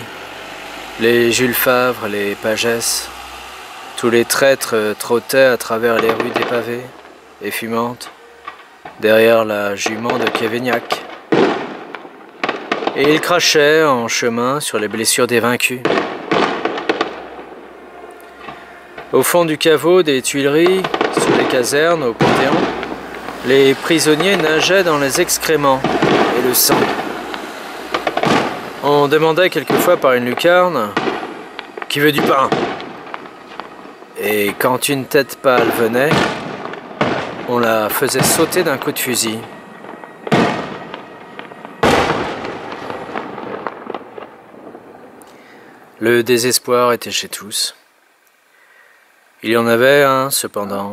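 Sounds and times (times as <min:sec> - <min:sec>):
fireworks bursting and cracking: 0:00.0 - 0:46.6
fireworks rumble: 0:00.0 - 0:48.2.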